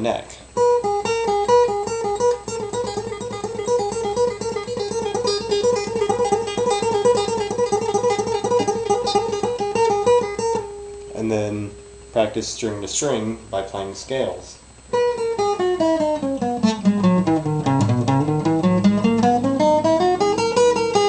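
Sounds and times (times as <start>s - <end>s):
person speaking: 0.0s - 0.6s, 11.1s - 14.7s
acoustic guitar tremolo picking: 0.0s - 21.0s.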